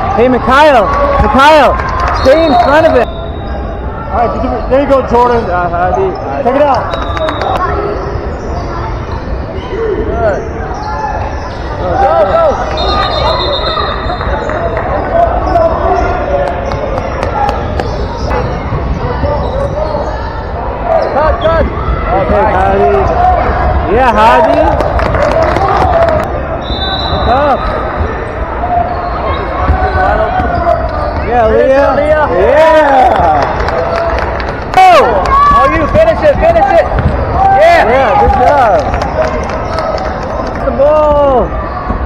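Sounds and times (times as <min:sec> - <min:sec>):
echoing voices in a hall: 0:00.0 - 0:42.0
basketball bouncing: 0:35.4 - 0:37.4.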